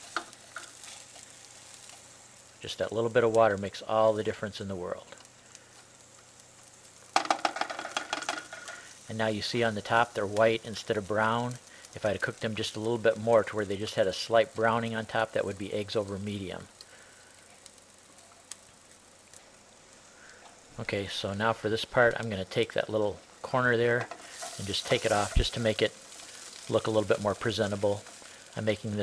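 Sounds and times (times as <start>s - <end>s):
small crackling ticks: 0.0s - 3.8s, 5.0s - 9.1s, 9.8s - 20.7s, 24.0s - 29.0s
eggs sizzling in a frying pan: 0.0s - 29.0s.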